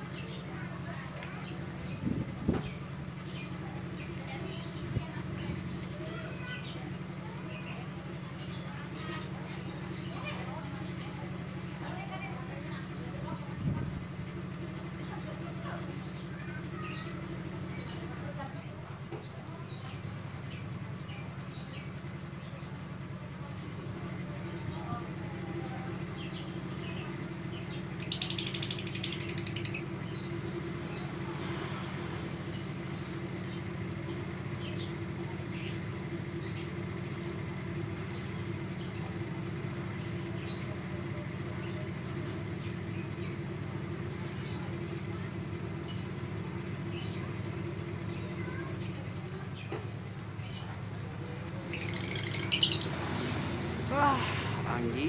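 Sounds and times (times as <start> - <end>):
bird chattering: 0.0 - 55.0
bird chirping: 26.0 - 31.1, 41.4 - 55.0
shrill bird calls: 46.7 - 53.0.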